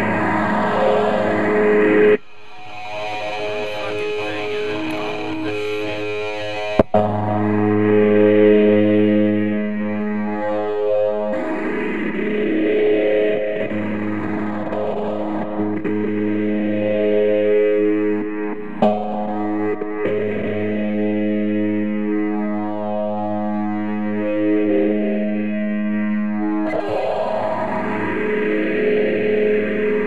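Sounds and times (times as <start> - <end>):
distorted electric guitar: 0.0 - 30.0.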